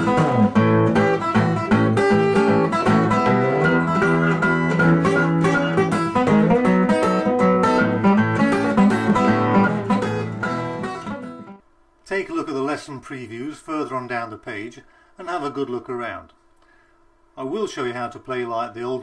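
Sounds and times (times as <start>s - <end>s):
fingerpicked acoustic blues guitar: 0.0s - 11.6s.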